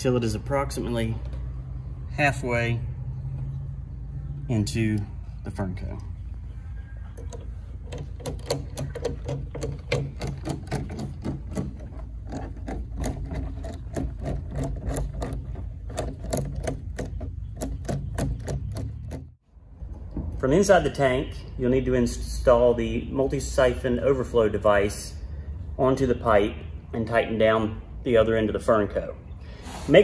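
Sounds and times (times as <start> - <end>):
band clamp clicking as tightened: 7.2 - 19.3.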